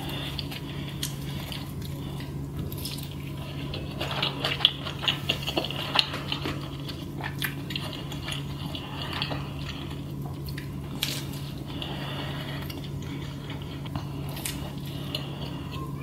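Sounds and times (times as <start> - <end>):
chewing with mouth clicks: 0.0 - 16.0
steady low hum: 0.0 - 16.0.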